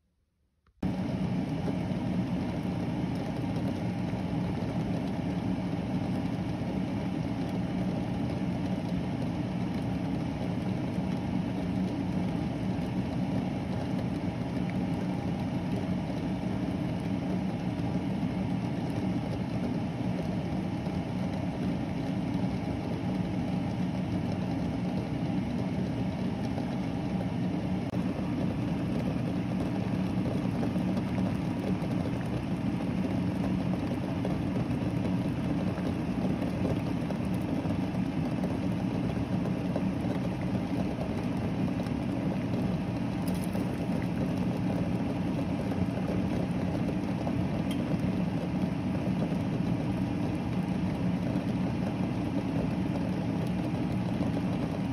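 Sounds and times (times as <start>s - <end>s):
water boiling in saucepan: 0.8s - 54.9s.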